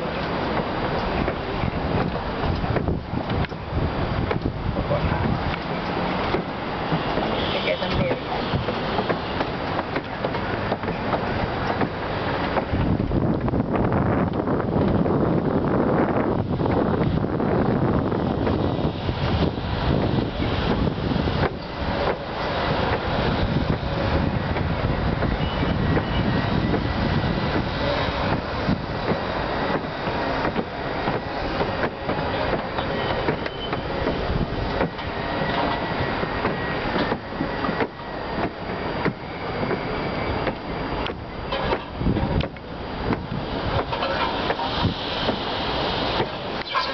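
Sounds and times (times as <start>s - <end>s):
wind buffeting microphone: 0.0s - 46.9s.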